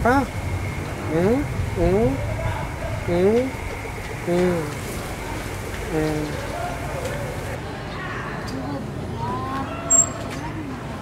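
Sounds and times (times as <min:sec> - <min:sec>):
low rumble of traffic: 0:00.0 - 0:11.0.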